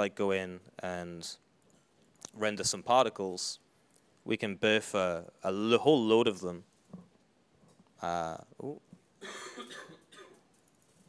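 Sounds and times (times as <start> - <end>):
man coughing: 9.2 - 10.4.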